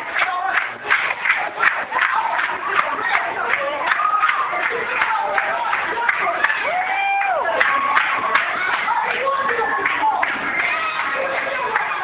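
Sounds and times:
rapid irregular claps: 0.0s - 12.0s.

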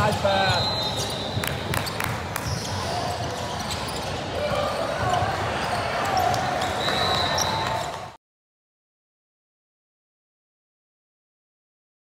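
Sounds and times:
echoing voices in a hall: 1.4s - 8.2s.

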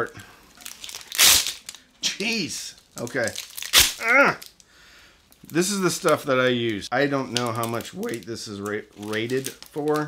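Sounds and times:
hook-and-loop fastener ripping: 0.6s - 1.8s, 3.0s - 4.4s
plastic packet rustling: 0.6s - 4.6s, 5.3s - 10.0s.

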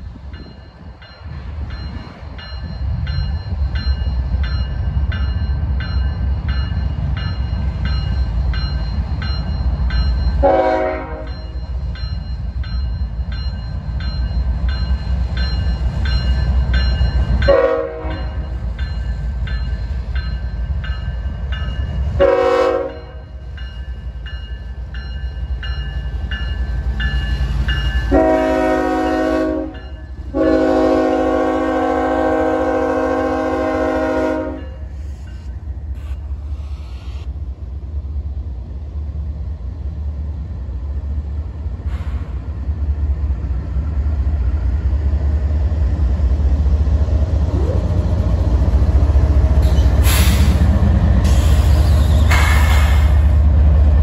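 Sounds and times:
train engine rumble: 0.0s - 54.0s
train air horn blasts: 10.4s - 11.4s, 17.5s - 18.5s, 22.2s - 23.3s, 28.1s - 34.9s.

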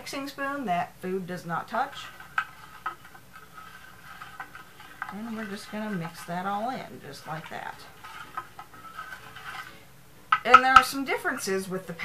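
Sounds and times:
spoon swishing in water: 1.9s - 9.9s
spoon tapping bowl: 10.3s - 11.0s.

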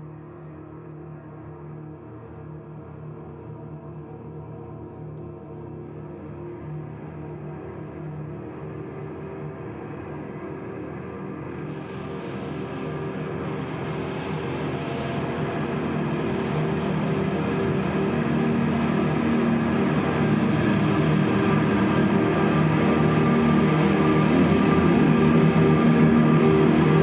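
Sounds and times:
sustained drone music: 0.0s - 27.0s.

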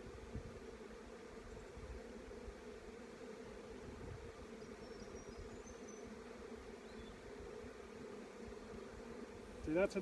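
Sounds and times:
bees humming: 0.0s - 10.0s.

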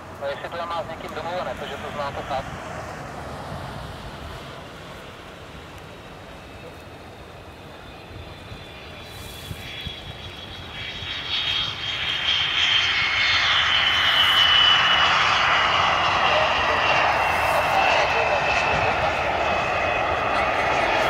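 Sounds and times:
high turbine whine: 0.0s - 21.0s
jet engine roar: 0.0s - 21.0s.

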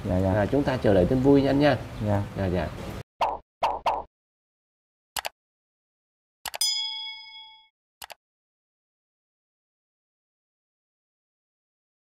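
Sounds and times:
bright bell ding: 6.6s - 7.7s.

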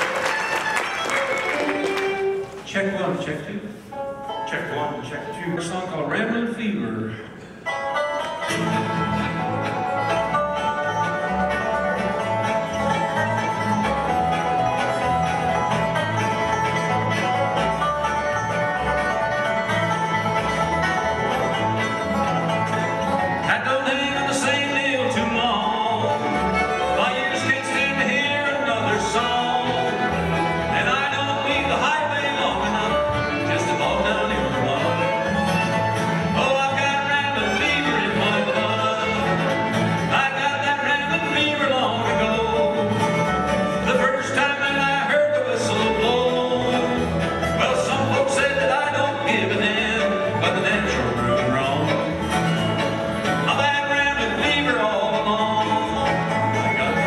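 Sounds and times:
fiddle: 0.0s - 2.8s, 8.0s - 45.6s
acoustic guitar: 0.0s - 57.0s
mandolin: 0.0s - 57.0s
dobro: 3.9s - 57.0s
banjo: 4.3s - 57.0s
upright bass: 8.2s - 57.0s.

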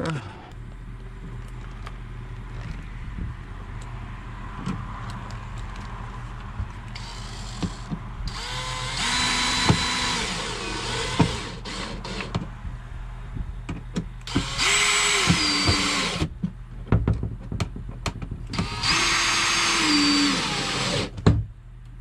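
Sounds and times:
cordless drill driving screws: 7.0s - 12.3s, 14.2s - 16.3s, 18.5s - 21.1s.

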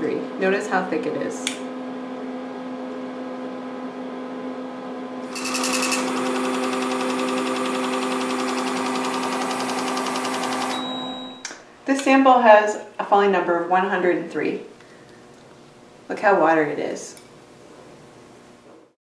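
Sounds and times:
steady electrical hum: 0.0s - 18.7s
short high beep: 10.7s - 11.5s.

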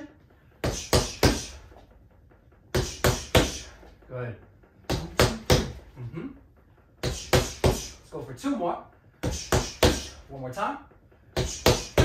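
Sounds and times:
punches thudding on punching bag: 0.6s - 1.6s, 2.7s - 3.8s, 4.9s - 5.8s, 7.0s - 8.0s, 9.2s - 10.2s, 11.4s - 12.0s.

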